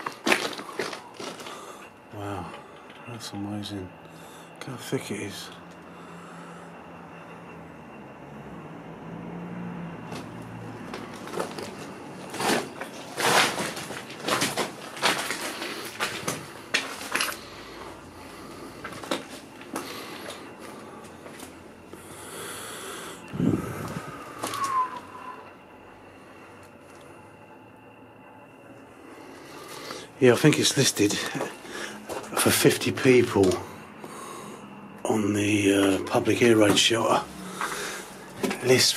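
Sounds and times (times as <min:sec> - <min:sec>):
knocks clatter and scrapes: 0:10.9 - 0:17.4.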